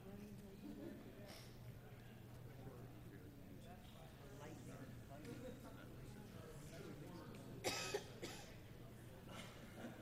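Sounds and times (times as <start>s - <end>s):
person coughing: 7.6s - 8.6s.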